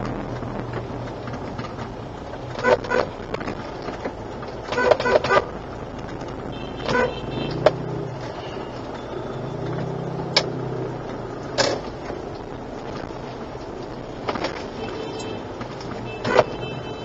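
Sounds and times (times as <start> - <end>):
idling traffic engine hum: 0.0 - 17.0
vehicle horns tooting: 4.7 - 5.5, 6.5 - 9.7, 14.6 - 17.0.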